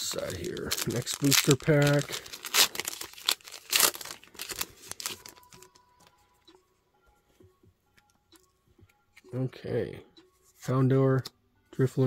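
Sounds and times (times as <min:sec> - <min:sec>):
foil wrapper tearing and crinkling: 0:00.0 - 0:05.7.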